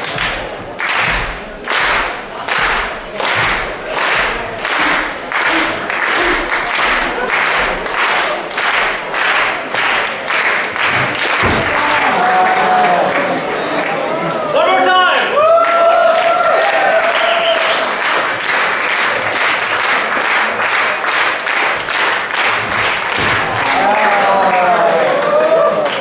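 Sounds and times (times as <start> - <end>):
audience clapping in unison: 0.0 - 26.0.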